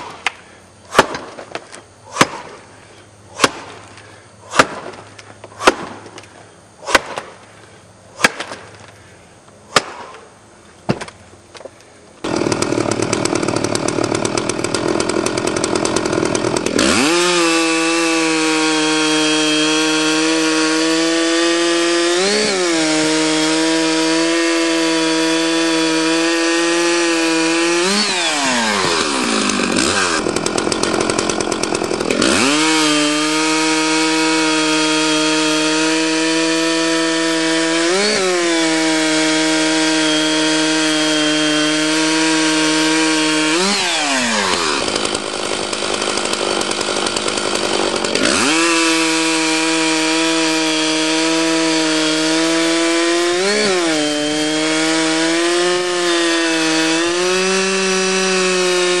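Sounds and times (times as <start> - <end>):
axe strike: 2.1 - 2.6, 4.5 - 5.0, 5.6 - 6.1, 8.2 - 8.7
chainsaw cutting a log: 12.2 - 59.0.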